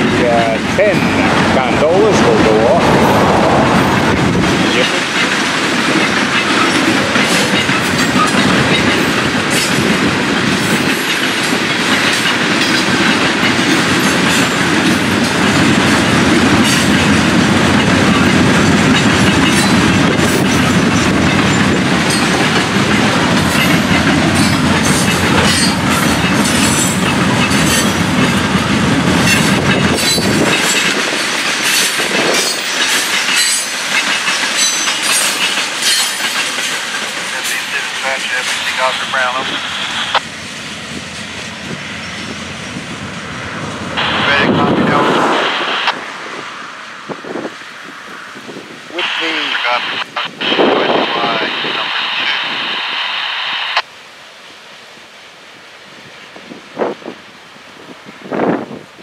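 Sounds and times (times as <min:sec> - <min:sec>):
freight train rolling: 0:00.0 - 0:53.9, 0:54.8 - 0:59.0
wheels clacking over rail joints: 0:02.1 - 0:40.3
clanks and squeaks: 0:31.7 - 0:38.7.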